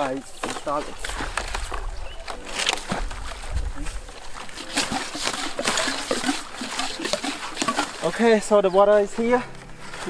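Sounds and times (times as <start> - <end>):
water splashing and sloshing: 0.0 - 10.0.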